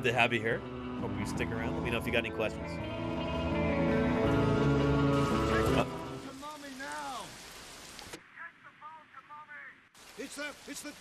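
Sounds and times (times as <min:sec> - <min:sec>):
steady rain-like hiss: 0:04.6 - 0:11.0.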